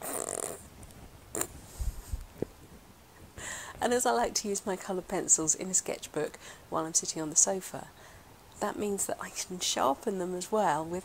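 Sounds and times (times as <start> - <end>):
woman laughing breathily: 3.3 - 3.8
quick breath: 3.4 - 3.8, 6.4 - 6.7.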